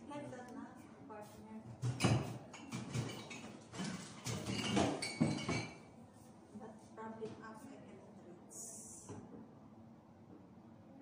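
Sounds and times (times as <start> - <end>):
glass bottles clinking: 4.2 - 5.8.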